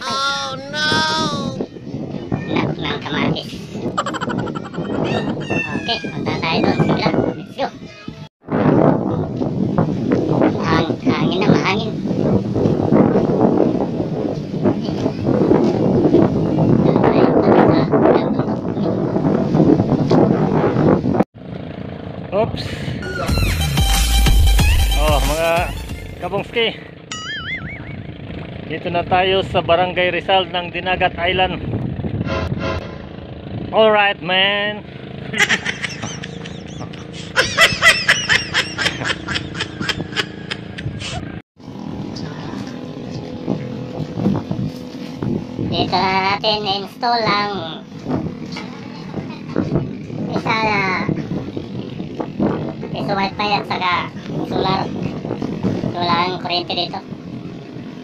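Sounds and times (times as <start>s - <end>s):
wind buffeting microphone: 0.0s - 21.2s, 27.7s - 58.0s
man laughing: 3.5s - 6.2s, 35.3s - 41.4s
low engine hum: 38.7s - 46.3s.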